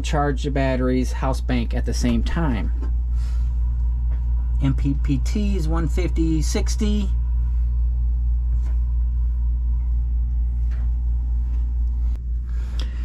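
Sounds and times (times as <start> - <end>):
low electrical hum with buzz: 0.0 - 13.0.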